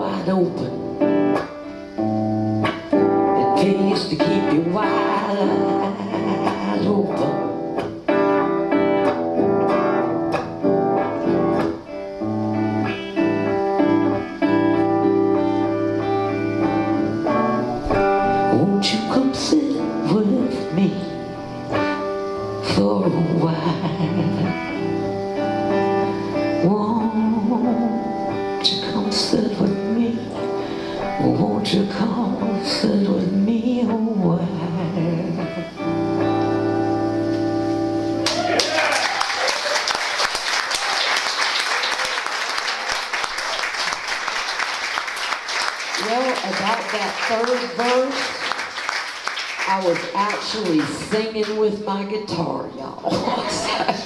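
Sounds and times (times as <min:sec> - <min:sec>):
electric guitar playing: 0:00.0 - 0:54.0
woman singing: 0:03.2 - 0:07.6, 0:18.4 - 0:21.4, 0:22.6 - 0:24.9, 0:26.4 - 0:35.8
applause: 0:38.2 - 0:51.6.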